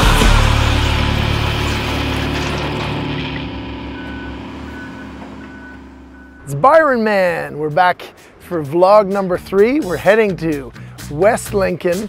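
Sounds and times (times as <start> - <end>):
low steady rumble: 0.3 - 10.6
faint reversing alarm beeps: 3.9 - 6.7.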